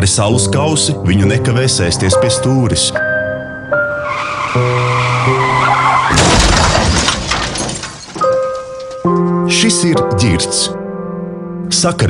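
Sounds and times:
music: 0.0 - 12.0
car tyres squealing: 3.7 - 8.8
loud car crash: 3.8 - 9.0.

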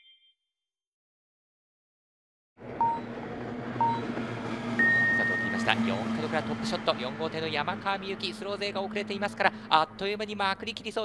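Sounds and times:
outboard engines droning: 2.6 - 11.0
start clock beeps: 2.8 - 3.1, 3.8 - 4.1, 4.8 - 5.7.

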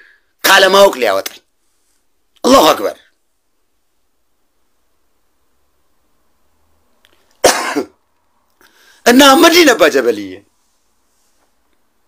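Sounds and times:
man coughing: 7.4 - 8.0.

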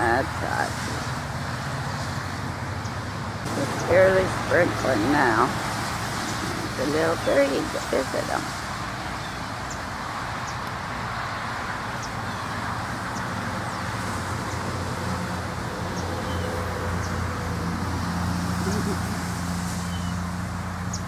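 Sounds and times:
road traffic noise: 0.0 - 21.0
vehicle engine humming: 0.0 - 21.0.

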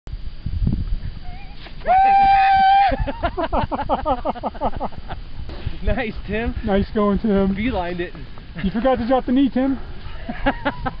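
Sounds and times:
wind rumble on microphone: 0.1 - 11.0
person whooping: 1.2 - 3.4.

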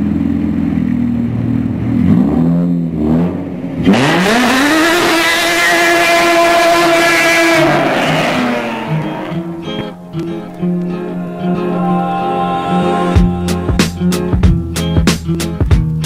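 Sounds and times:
car engine revving: 0.0 - 15.4
background music with beat: 8.9 - 16.0.

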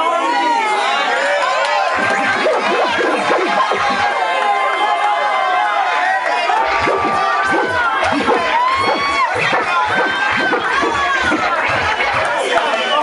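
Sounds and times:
crowd cheering and shouting: 0.0 - 13.0
high whoops: 3.6 - 10.2.

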